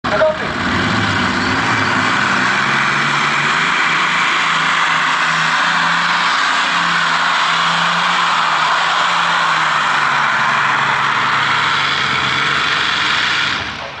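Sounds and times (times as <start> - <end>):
aircraft engines at full throttle: 8.2 - 14.0.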